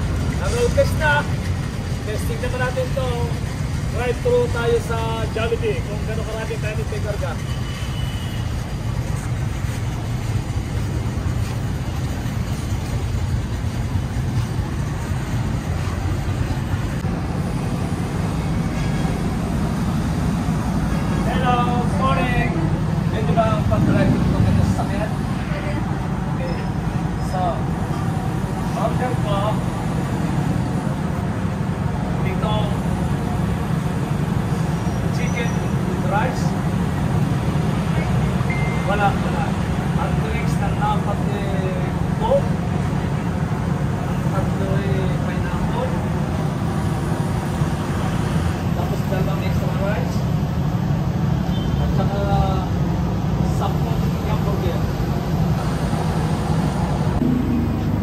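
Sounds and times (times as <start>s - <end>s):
street traffic rumble: 0.0s - 58.0s.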